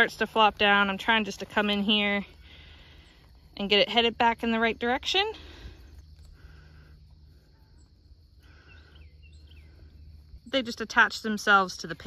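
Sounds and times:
faint bird chirps: 5.7s - 11.0s.

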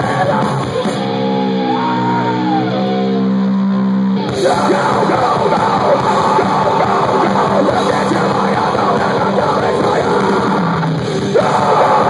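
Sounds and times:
live metal band playing: 0.0s - 12.0s
shouted singing: 0.0s - 12.0s.

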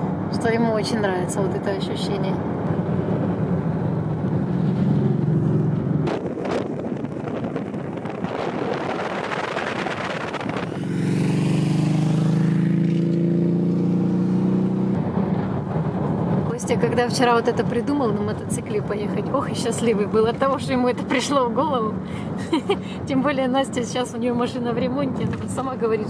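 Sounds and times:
car road and wind rumble: 0.0s - 26.0s.

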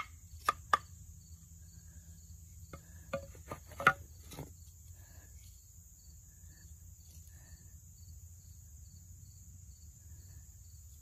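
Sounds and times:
insects droning: 0.0s - 11.0s
wooden knocks on stone: 2.7s - 4.5s.

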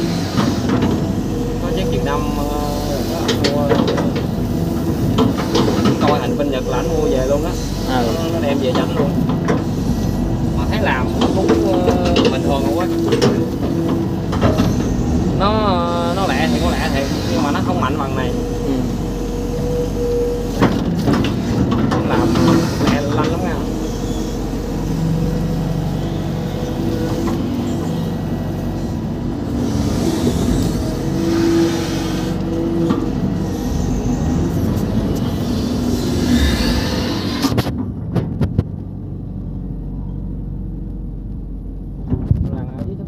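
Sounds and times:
excavator diesel engine running: 0.0s - 43.0s.

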